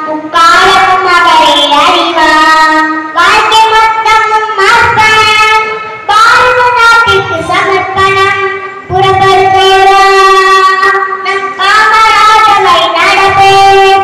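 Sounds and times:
girl singing unaccompanied: 0.0 - 14.0.

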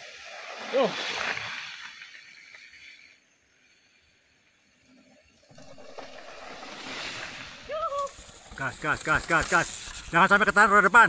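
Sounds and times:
bike tyres rolling on dirt: 0.0 - 4.8, 5.4 - 11.0.

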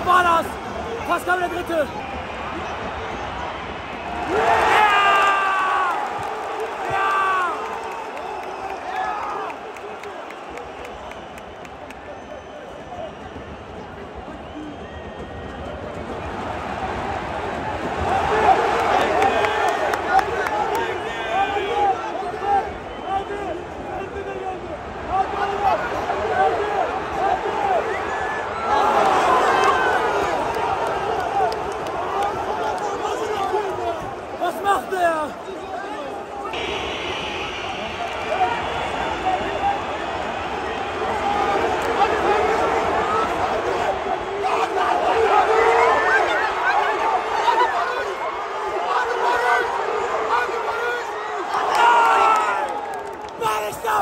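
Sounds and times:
crowd chanting and shouting: 0.0 - 7.6, 16.0 - 54.0.

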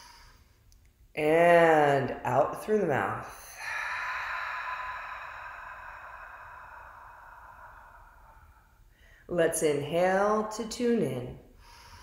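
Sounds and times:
long breathy exhale: 0.0 - 0.6, 3.3 - 9.3, 11.6 - 12.0.

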